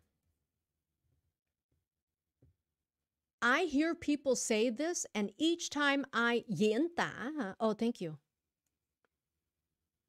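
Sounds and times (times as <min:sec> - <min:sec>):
woman's voice: 0:03.4 - 0:08.2.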